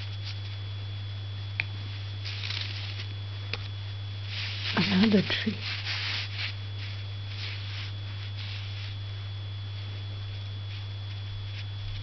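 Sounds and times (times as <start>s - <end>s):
low electrical hum: 0.0s - 12.0s
ink brush swishing on paper: 4.2s - 9.0s.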